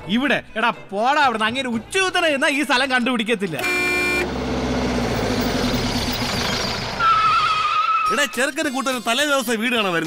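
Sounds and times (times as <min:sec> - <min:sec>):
vehicle engine running: 0:03.7 - 0:07.0.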